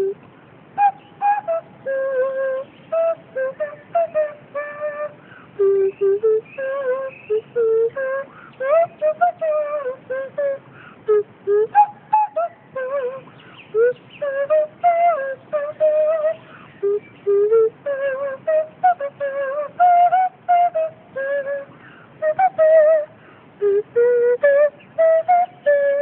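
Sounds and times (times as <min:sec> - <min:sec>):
nose flute playing tune: 0:00.8 - 0:26.0.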